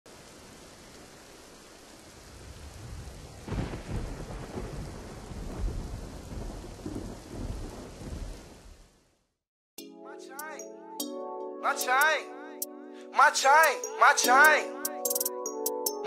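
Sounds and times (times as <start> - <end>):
steady rain: 0.1 - 9.4
rolling thunder rumbles: 2.2 - 8.9
thunderclap: 2.3 - 8.9.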